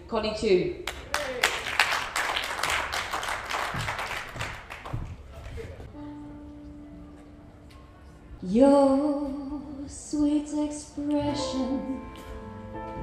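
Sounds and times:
audience applause: 0:00.9 - 0:05.8.

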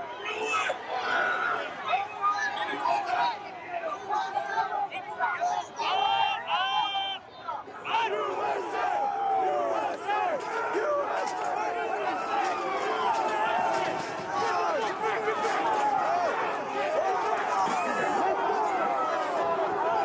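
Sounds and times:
large crowd shouting: 0:00.0 - 0:20.0.

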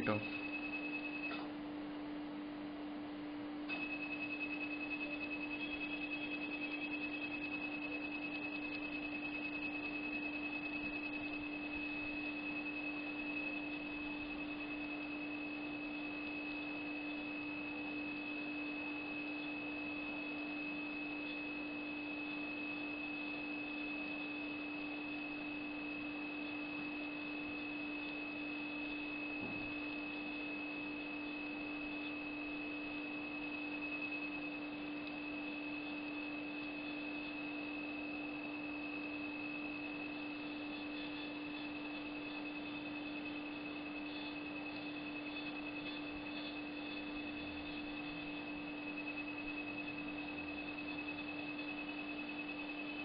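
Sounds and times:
high electronic laser tone: 0:00.0 - 0:01.5, 0:03.7 - 0:53.0
steady low hum: 0:00.0 - 0:53.0.

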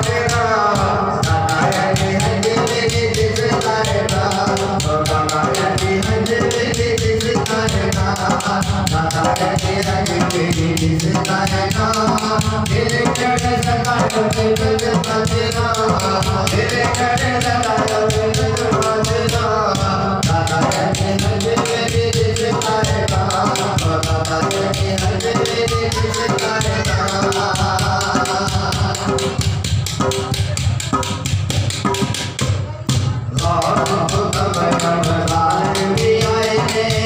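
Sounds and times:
man singing into a microphone: 0:00.0 - 0:31.2, 0:33.0 - 0:37.0.

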